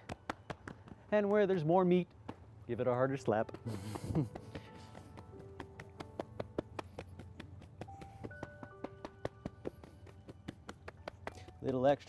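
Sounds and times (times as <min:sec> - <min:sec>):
hands slapping legs: 0:00.0 - 0:02.5, 0:03.2 - 0:12.0
soft background music: 0:00.0 - 0:12.0.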